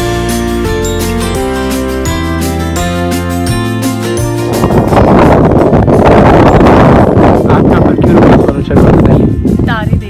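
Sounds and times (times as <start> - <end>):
wind buffeting microphone: 4.0 - 10.0.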